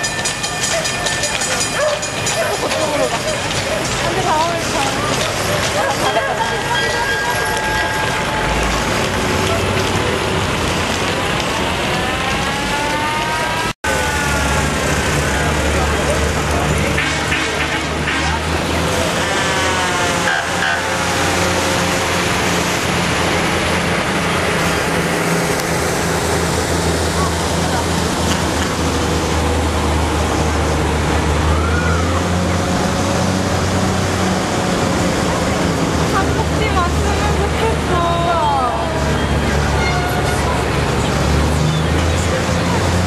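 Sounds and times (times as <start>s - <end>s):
fire engines driving past: 0.0s - 43.0s
spectators' voices: 0.0s - 43.0s
tyres hissing on wet road: 0.0s - 43.0s.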